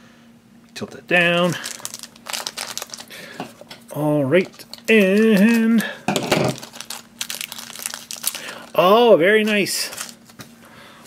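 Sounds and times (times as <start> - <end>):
foil bag crinkling: 1.4 - 3.7, 4.3 - 10.4.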